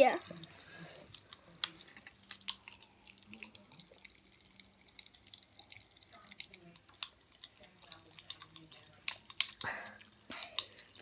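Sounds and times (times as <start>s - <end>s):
popping candy crackling in soda: 0.0s - 11.0s.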